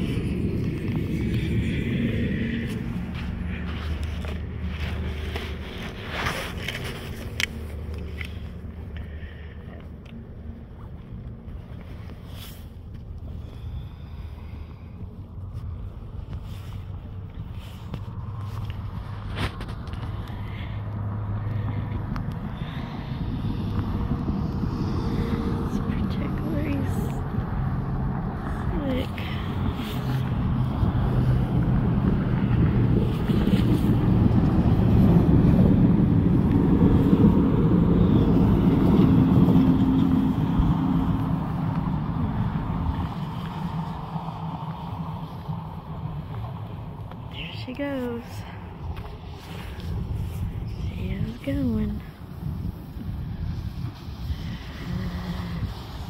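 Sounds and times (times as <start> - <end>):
road traffic: 0.0 - 56.0.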